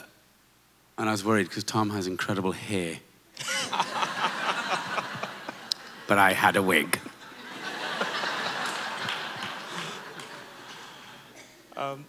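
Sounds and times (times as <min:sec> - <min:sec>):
audience laughing: 0:03.4 - 0:11.4.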